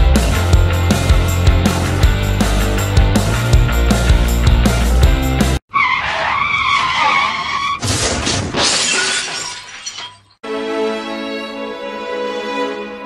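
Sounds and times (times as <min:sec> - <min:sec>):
rock music: 0:00.0 - 0:05.6
tyre screech: 0:05.7 - 0:08.6
loud crash with shattering: 0:07.8 - 0:10.4.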